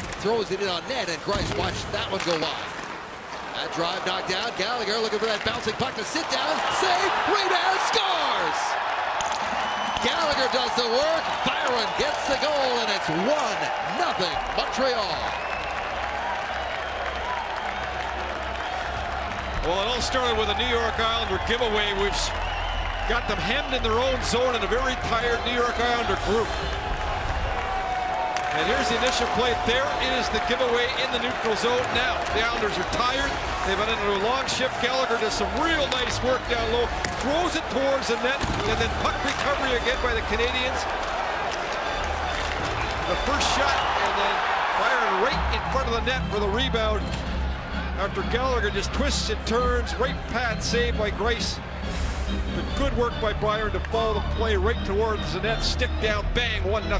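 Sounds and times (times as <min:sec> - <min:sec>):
crowd applauding and cheering: 0:00.0 - 0:56.9.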